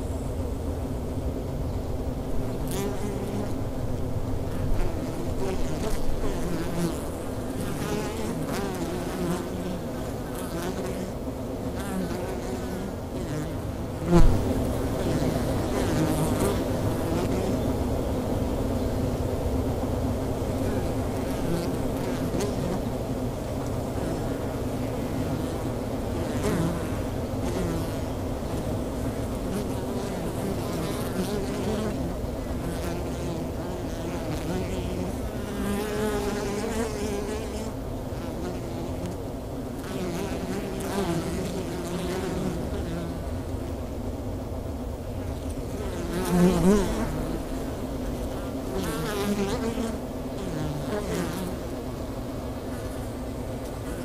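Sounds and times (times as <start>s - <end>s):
honey bees buzzing: 0.0s - 54.0s
brief thump: 14.2s - 14.5s.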